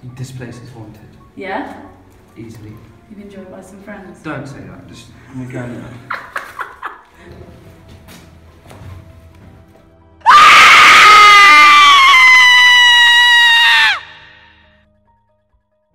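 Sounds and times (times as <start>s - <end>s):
loud long scream: 10.2s - 14.6s.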